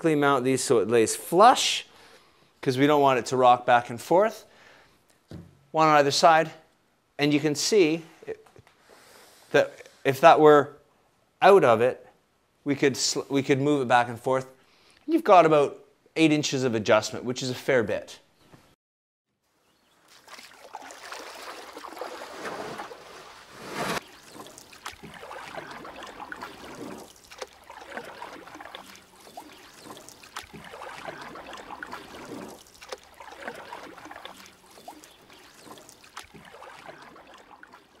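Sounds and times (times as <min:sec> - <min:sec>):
water rushing and splashing: 0:20.0 - 0:38.0.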